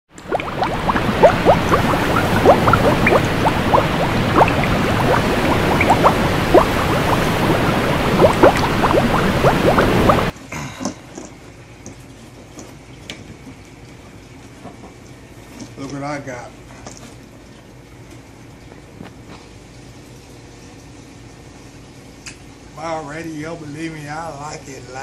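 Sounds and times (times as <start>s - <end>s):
water bubbling with plops: 0.1s - 10.3s.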